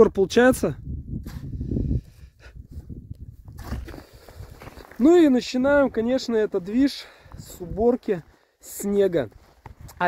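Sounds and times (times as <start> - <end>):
wind on microphone: 0.0 - 4.8
footsteps in deep snow: 2.7 - 10.0.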